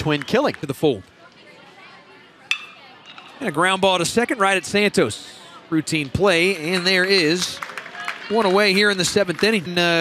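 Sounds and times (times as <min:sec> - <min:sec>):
faint ballpark crowd noise: 0:00.0 - 0:10.0
metal bat hitting ball: 0:02.5 - 0:03.4.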